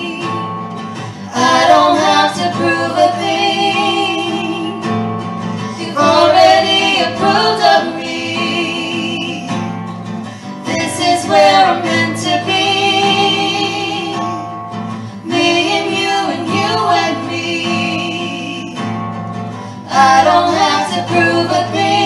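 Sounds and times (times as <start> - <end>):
women singing: 0.0 - 19.0, 19.7 - 22.0
acoustic guitar: 0.0 - 22.0.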